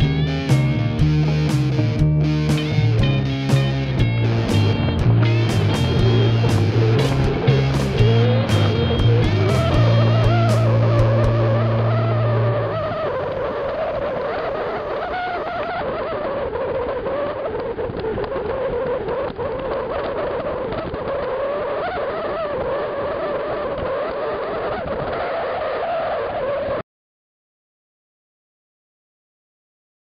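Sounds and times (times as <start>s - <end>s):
guitar music: 0.0s - 14.6s
road noise with wind rush: 0.0s - 26.8s.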